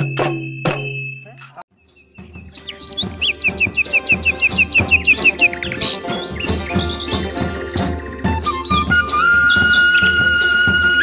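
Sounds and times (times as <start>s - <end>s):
music with steady beat: 0.0s - 11.0s
bird-like chirps: 1.0s - 10.8s
folk music: 2.2s - 11.0s.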